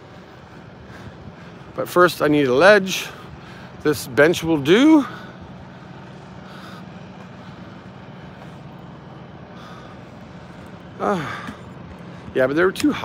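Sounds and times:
road traffic hum: 0.0 - 13.0
vehicles passing: 0.0 - 13.0.

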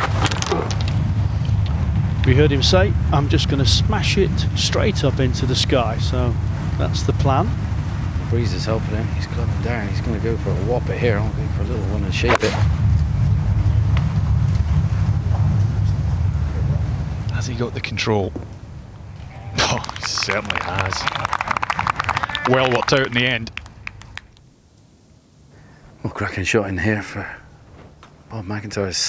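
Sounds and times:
wind rumble on microphone: 0.0 - 24.4.

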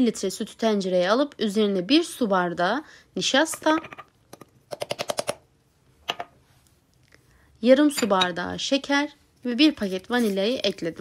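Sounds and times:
woman narrating: 0.0 - 4.0, 7.6 - 11.0.

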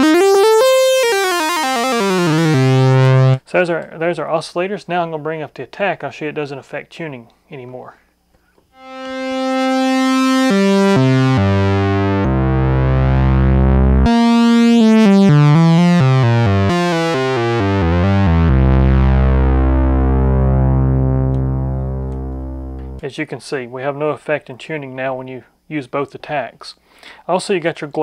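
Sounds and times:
synthesizer notes: 0.0 - 3.4, 8.8 - 23.0.

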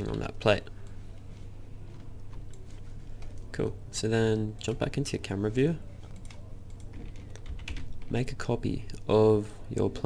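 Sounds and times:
low steady hum: 0.0 - 10.0
keyboard keys clicking: 6.1 - 8.0.

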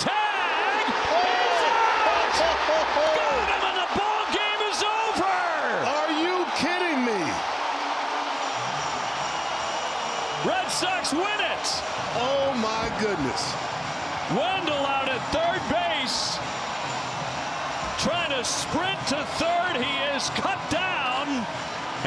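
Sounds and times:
crowd cheering and shouting: 0.0 - 22.0.

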